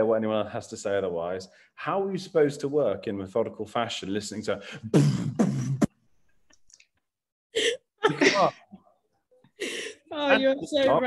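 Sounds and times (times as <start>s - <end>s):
woman laughing: 7.6s - 8.6s, 9.6s - 11.0s.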